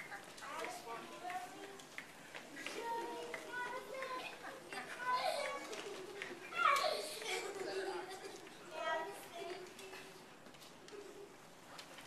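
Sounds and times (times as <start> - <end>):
children talking and calling out: 0.0 - 11.4.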